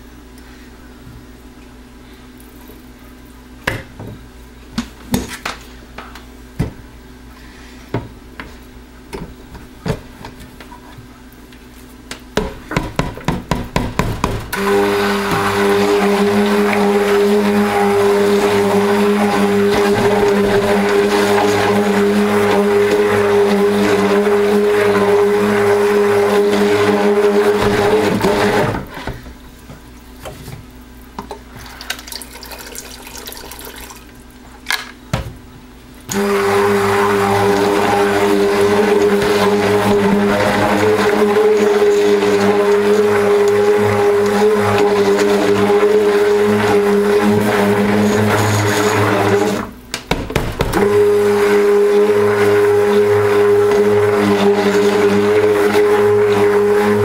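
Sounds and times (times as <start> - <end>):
stick blender motor churning batter: 12.8 - 29.2, 36.1 - 57.0.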